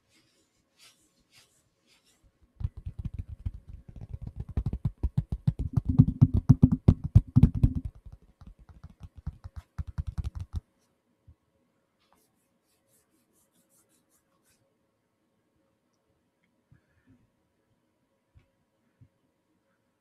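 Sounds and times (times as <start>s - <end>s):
fingers tapping on phone: 2.6s - 10.6s.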